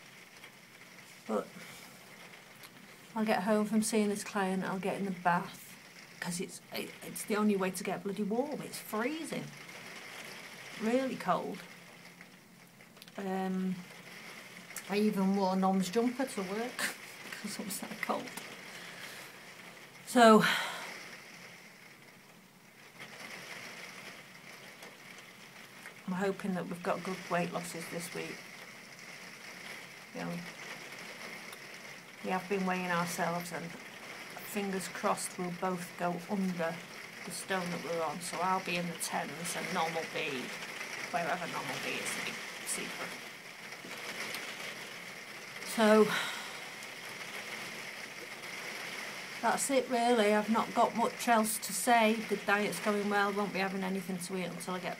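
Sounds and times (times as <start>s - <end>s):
faint steady rain: 0.0s - 54.9s
light ticks: 12.1s - 13.2s.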